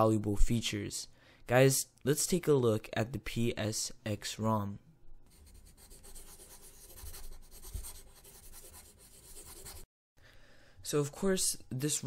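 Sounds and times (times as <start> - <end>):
pencil scratching on paper: 5.3 - 9.9.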